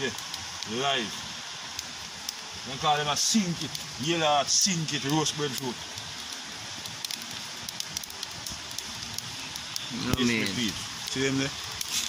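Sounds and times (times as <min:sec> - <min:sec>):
wood fire crackling and popping: 0:00.0 - 0:12.0.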